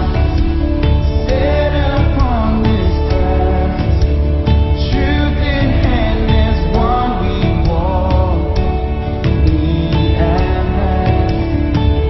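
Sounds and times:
man singing: 0.0s - 12.0s
worship band music: 0.0s - 12.0s.

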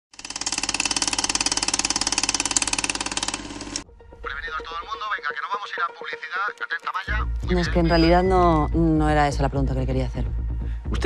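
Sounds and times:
film projector clattering: 0.1s - 3.8s.

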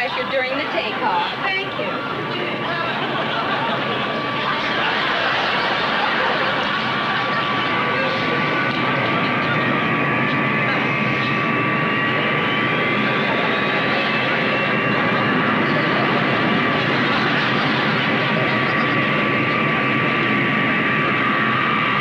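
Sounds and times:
jet engines roaring: 0.0s - 22.0s
rising engine whine: 0.0s - 22.0s.

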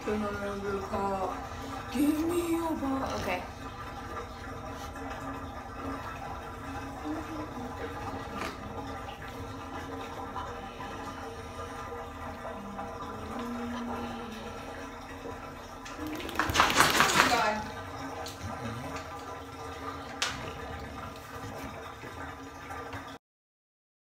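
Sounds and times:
water splashing in bathtub: 0.0s - 23.2s
dog shaking its head: 16.0s - 17.7s.

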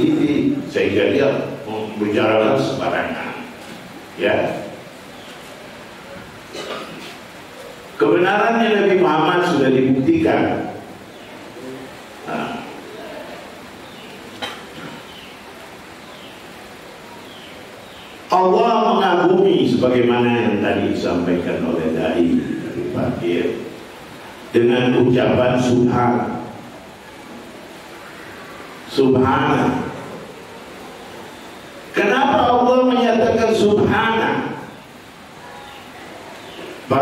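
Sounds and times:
steady hiss: 0.0s - 37.0s.

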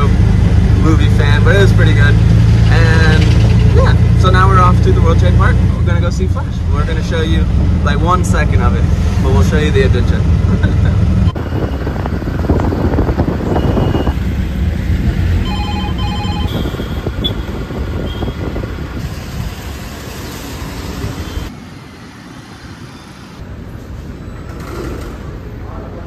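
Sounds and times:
auto-rickshaw engine: 0.0s - 26.0s
street traffic noise: 0.0s - 26.0s
quick beeps: 15.4s - 17.4s.

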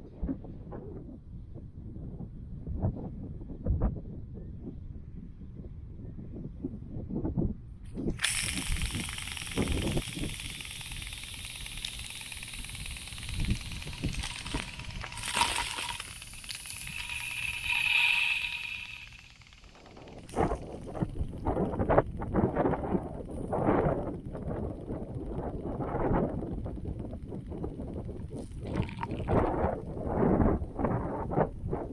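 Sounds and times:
wind rumbling on microphone: 0.0s - 31.9s
sprinkler spraying water: 8.0s - 22.0s, 28.4s - 29.7s.

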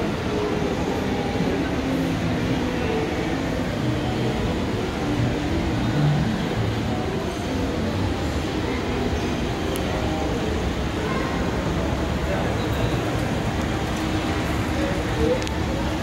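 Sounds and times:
shopping mall background rumble: 0.0s - 16.0s.

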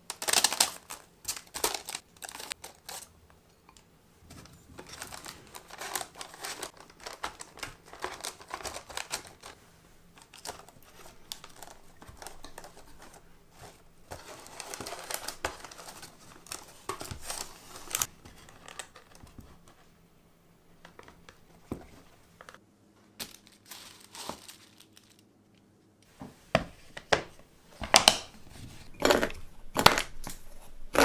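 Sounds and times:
crumbs crunching and paper crinkling: 0.0s - 3.1s, 4.2s - 19.7s, 23.2s - 25.3s.

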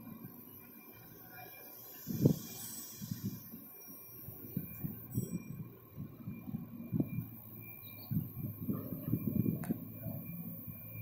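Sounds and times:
wind buffeting microphone: 4.3s - 7.4s, 8.0s - 11.0s.

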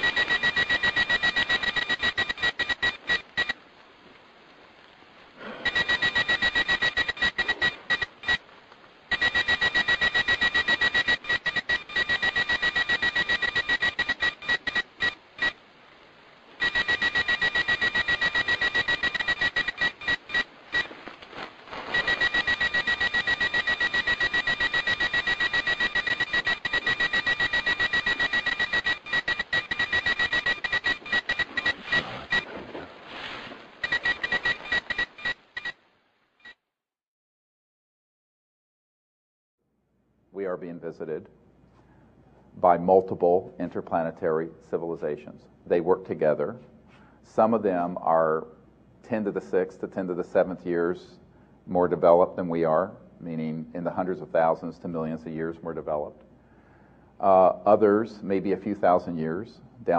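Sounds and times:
rapid high-pitched beeps: 0.0s - 3.6s, 5.6s - 8.4s, 9.1s - 15.6s, 16.6s - 20.9s, 21.9s - 32.5s, 33.8s - 35.8s.

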